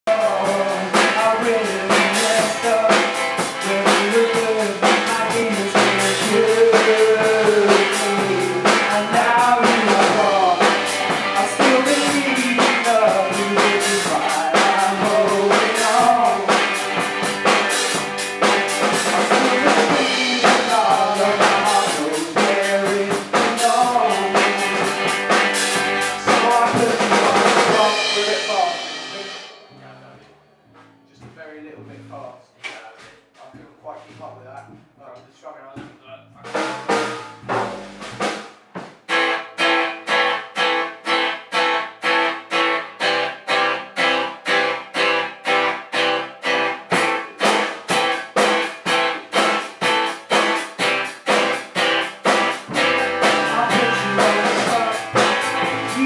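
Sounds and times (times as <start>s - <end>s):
man singing: 0.0s - 17.0s, 19.1s - 30.1s, 52.7s - 56.0s
rock band playing: 0.0s - 31.1s, 36.4s - 56.0s.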